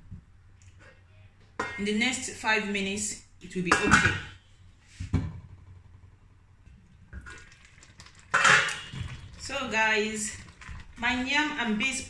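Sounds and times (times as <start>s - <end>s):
pot lid metallic clatter: 8.3s - 8.9s.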